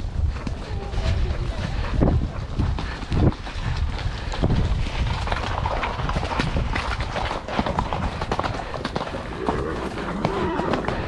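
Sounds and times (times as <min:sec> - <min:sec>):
horse hooves striking ground: 0:00.0 - 0:11.0
wind noise on microphone: 0:00.0 - 0:11.0.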